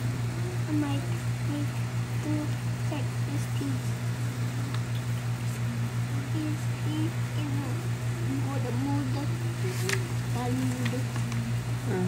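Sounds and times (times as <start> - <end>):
murmured voice and hums: 0.0 - 12.0
steady low hum: 0.0 - 12.0.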